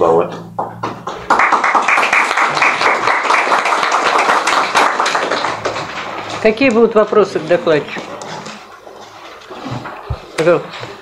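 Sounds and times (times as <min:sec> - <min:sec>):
audience applauding: 0:01.0 - 0:06.4.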